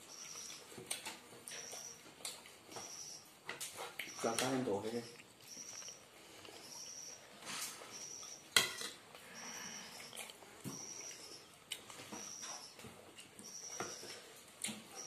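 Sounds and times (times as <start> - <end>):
spoon clinking on ceramic dishes: 8.6 - 9.0.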